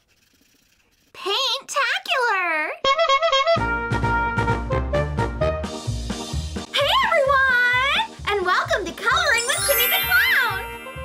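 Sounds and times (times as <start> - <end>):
children's jingle with bass beat: 5.6 - 11.0.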